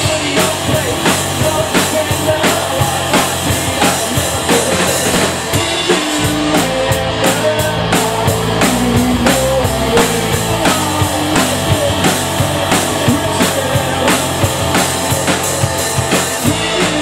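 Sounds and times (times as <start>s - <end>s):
drum kit beat: 0.0s - 17.0s
electric guitars bending notes: 0.0s - 17.0s.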